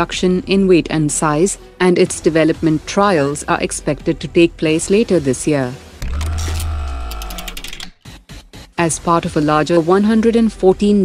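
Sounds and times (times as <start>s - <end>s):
quick high ticking: 6.0s - 7.9s
sustained tones: 6.0s - 7.9s.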